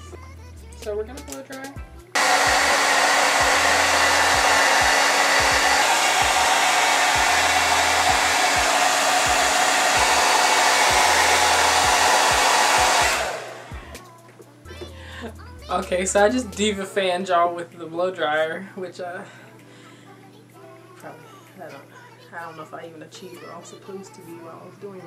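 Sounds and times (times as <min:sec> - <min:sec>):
hair dryer running: 0:02.2 - 0:14.1.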